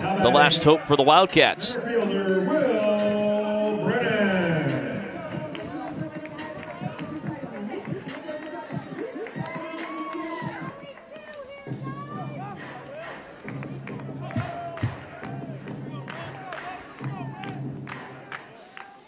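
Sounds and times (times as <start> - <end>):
public address voice: 0.0 - 9.8
crowd murmur: 0.0 - 19.0
faint music: 0.0 - 19.0
quieter voices: 0.0 - 19.0.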